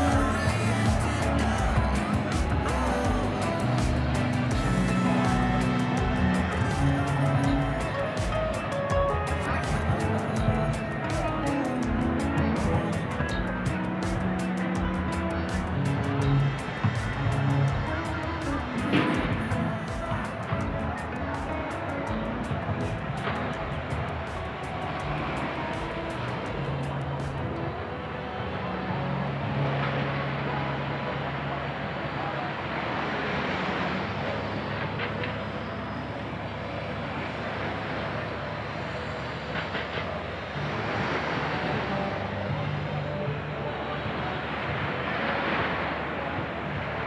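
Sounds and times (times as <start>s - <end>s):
low hum: 0.0s - 47.0s
surf on a beach: 0.0s - 47.0s
wind: 0.0s - 47.0s.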